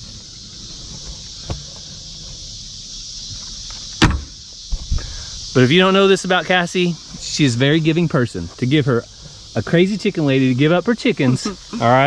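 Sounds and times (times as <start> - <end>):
high insect drone: 0.0 - 12.0.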